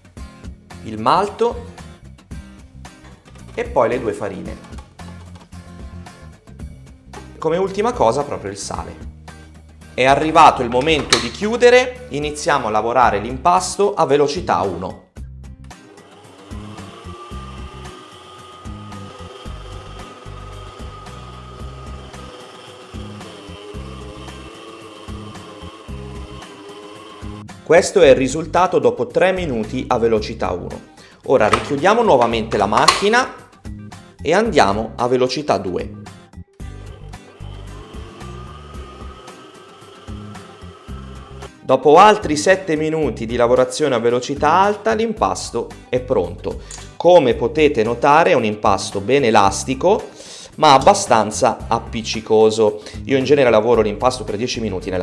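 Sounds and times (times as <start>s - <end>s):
background music: 0.0s - 55.0s
stand mixer motor whine: 15.9s - 27.4s, 36.7s - 41.5s.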